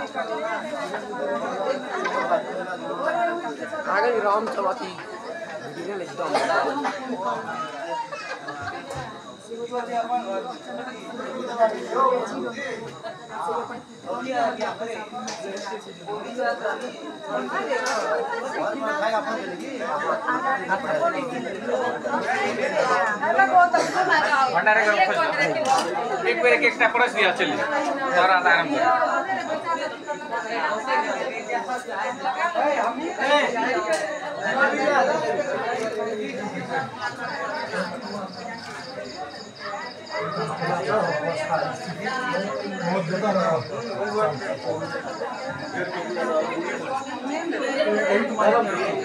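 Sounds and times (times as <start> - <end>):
group of people chattering: 0.0 - 49.0.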